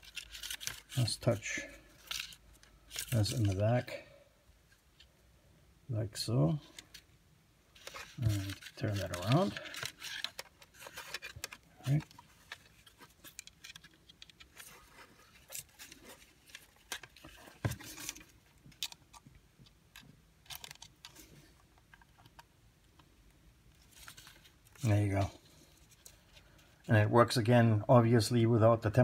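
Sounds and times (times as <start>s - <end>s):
plastic clicks and rattles: 16.4s - 23.1s.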